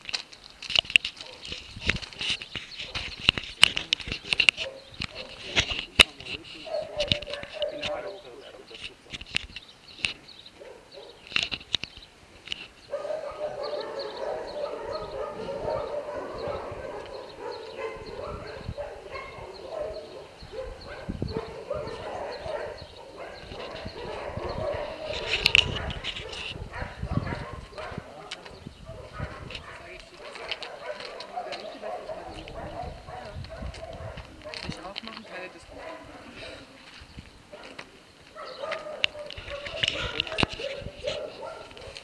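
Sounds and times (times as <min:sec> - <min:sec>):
dogs barking and yelping: 0:01.2 - 0:01.7, 0:02.7 - 0:03.4, 0:04.3 - 0:09.0, 0:10.5 - 0:11.4, 0:12.8 - 0:36.8, 0:37.5 - 0:42.0.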